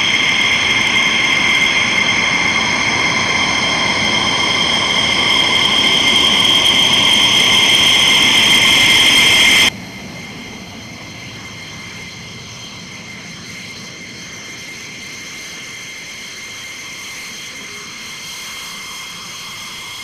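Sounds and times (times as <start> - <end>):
jet engines whining: 0.0 - 20.0.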